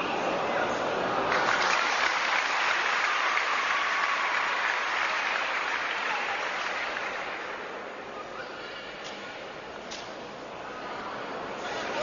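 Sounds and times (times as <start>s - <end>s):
spectators applauding: 1.3s - 7.7s.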